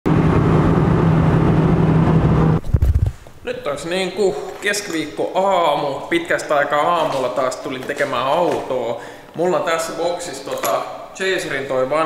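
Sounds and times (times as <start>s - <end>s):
car engine droning: 0.1s - 2.6s
road noise: 0.1s - 2.8s
man speaking: 3.4s - 12.0s.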